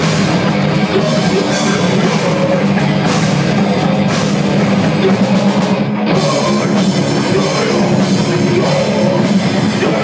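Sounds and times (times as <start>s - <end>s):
drum kit: 0.0s - 10.0s
electric guitar: 0.0s - 10.0s.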